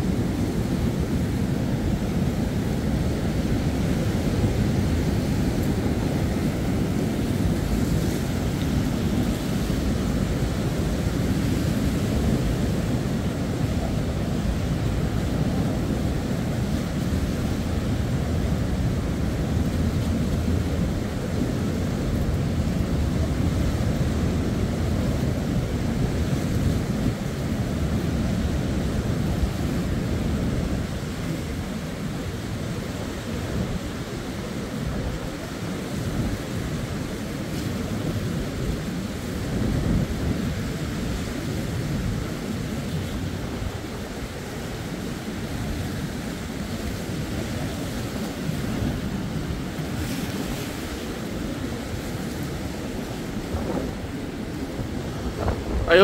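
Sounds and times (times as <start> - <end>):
sea waves against concrete wall: 0.0 - 56.0
wind buffeting microphone: 45.2 - 56.0.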